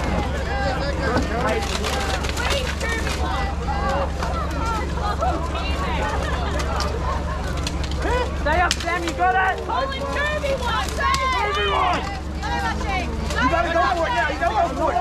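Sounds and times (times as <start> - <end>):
people shouting and yelling: 0.0 - 15.0.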